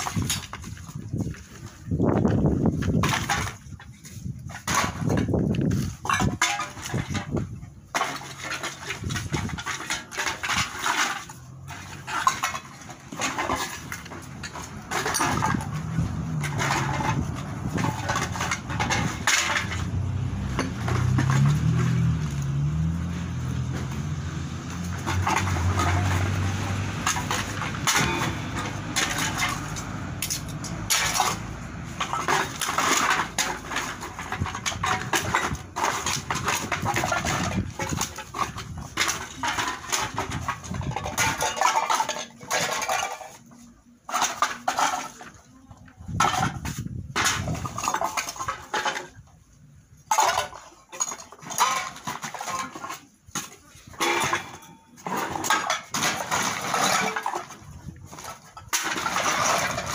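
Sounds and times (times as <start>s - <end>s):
bottles and cans clattering: 0.0s - 59.9s.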